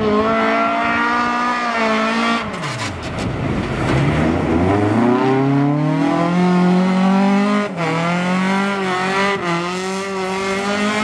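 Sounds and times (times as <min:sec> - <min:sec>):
racing car engine revving: 0:00.0 - 0:11.0.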